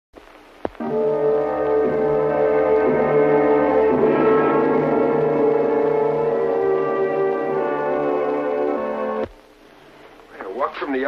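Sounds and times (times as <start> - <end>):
sustained held chord: 0.8 - 9.2
faint hiss: 4.8 - 11.0.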